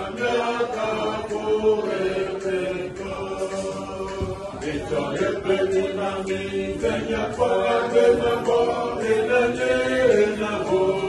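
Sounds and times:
group singing a worship song: 0.0s - 11.0s.

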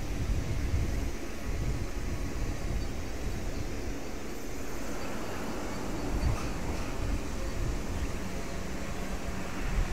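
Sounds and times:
turboprop aircraft taxiing: 0.0s - 9.9s.

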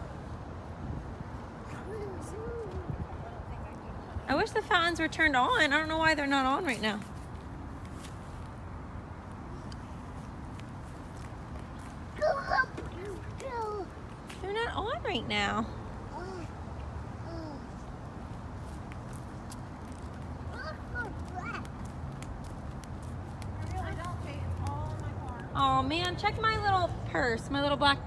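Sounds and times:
young child vocal sound: 1.6s - 3.2s, 12.2s - 14.0s, 16.1s - 17.9s, 20.5s - 21.7s.

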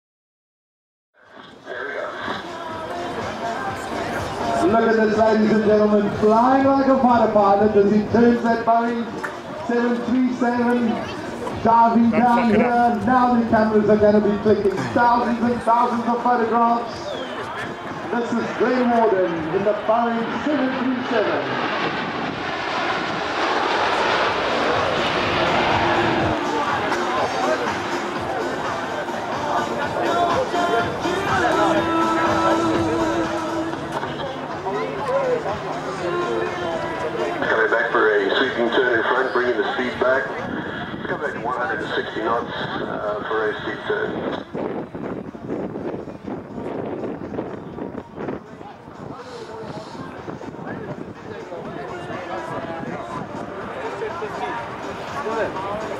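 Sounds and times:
jet engines rushing: 1.3s - 55.9s
indistinct voices: 16.8s - 44.5s
wind buffeting microphone: 40.3s - 55.9s.

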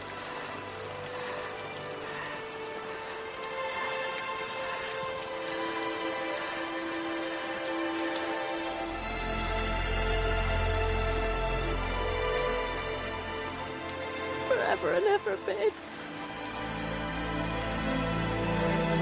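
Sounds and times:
film score held notes: 0.0s - 19.0s
steady rain falling: 0.0s - 19.0s.

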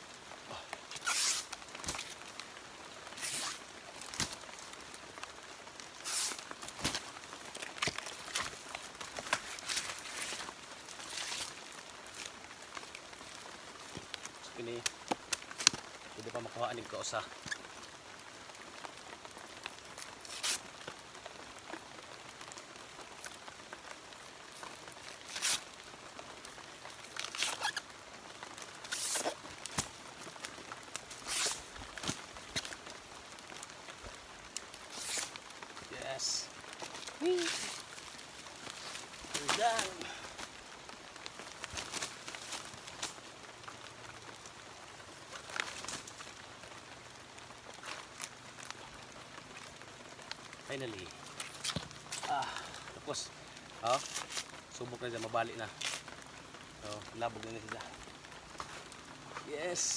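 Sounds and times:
fibre strips rustling and scraping: 0.7s - 2.4s, 3.1s - 4.7s, 5.8s - 16.5s, 19.6s - 20.8s, 24.5s - 43.6s, 50.8s - 56.2s
leaf sheath ripping by hand: 0.9s - 2.4s, 3.1s - 4.7s, 6.0s - 12.3s, 19.9s - 20.8s, 24.6s - 25.7s, 26.8s - 27.9s, 28.7s - 32.9s, 34.5s - 35.5s, 36.2s - 40.6s, 51.2s - 52.9s, 53.8s - 54.6s, 55.7s - 56.2s.

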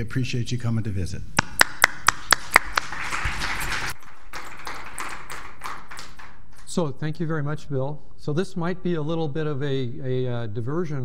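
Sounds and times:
audience applause: 2.1s - 6.6s.

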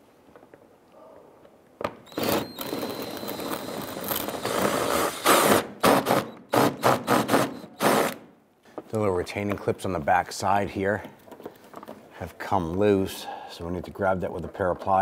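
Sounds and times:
cordless power driver whining: 2.1s - 5.5s.

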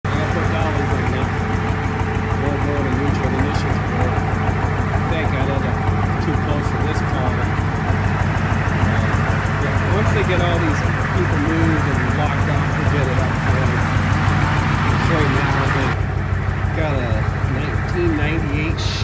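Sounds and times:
truck engine running: 0.0s - 19.0s
voices talking: 0.0s - 19.0s.

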